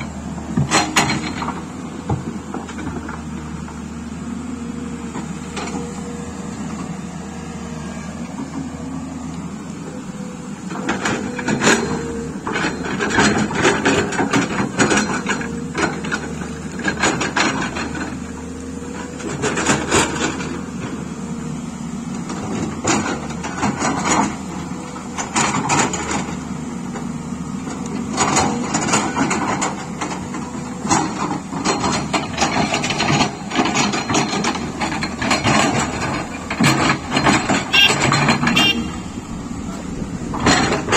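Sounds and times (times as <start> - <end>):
diesel engine drone: 0.0 - 40.9
excavator bucket scraping rocks: 0.0 - 40.9.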